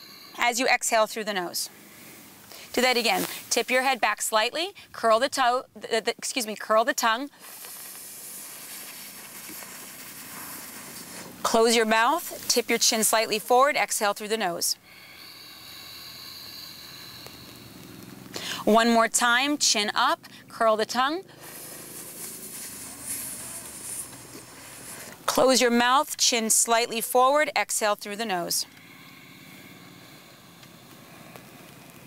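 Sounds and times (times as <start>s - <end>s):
breath hissing in through mouth: 7.3s - 11.4s, 14.8s - 18.6s, 21.2s - 25.2s, 28.7s - 31.9s
person inhaling through tongue: 14.8s - 18.7s, 28.7s - 31.6s.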